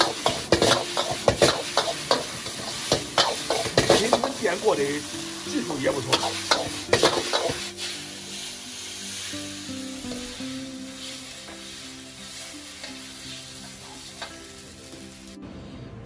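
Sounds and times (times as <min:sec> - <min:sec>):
noodles sizzling in a wok: 0:00.0 - 0:15.4
utensil knocking: 0:06.1 - 0:07.6.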